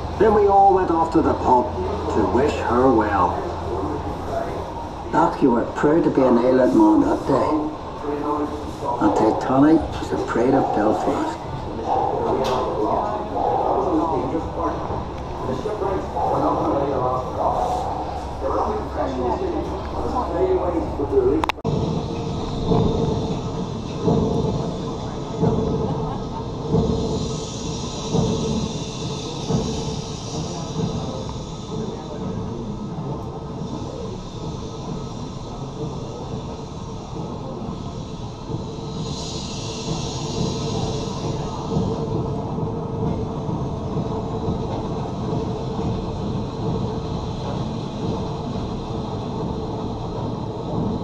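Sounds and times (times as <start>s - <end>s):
low rumble with hum: 11.4s - 51.0s.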